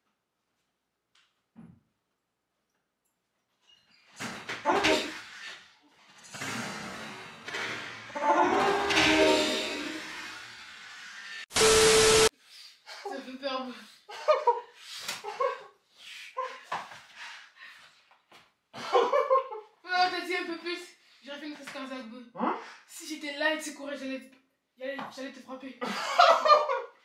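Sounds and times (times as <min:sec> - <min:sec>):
electronic tone: 0:11.5 - 0:12.3
loud burst: 0:11.5 - 0:12.3.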